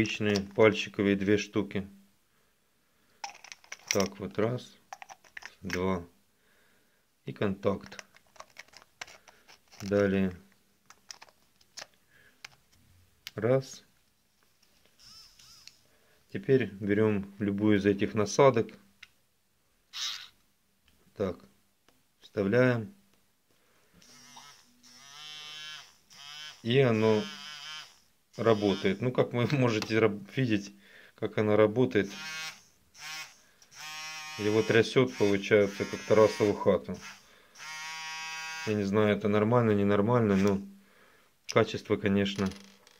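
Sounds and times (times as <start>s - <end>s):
electric nail file motor buzzing: 15.0s - 15.8s, 24.0s - 29.0s, 32.1s - 38.7s
faint short squeaks: 15.0s - 15.8s, 19.9s - 20.4s.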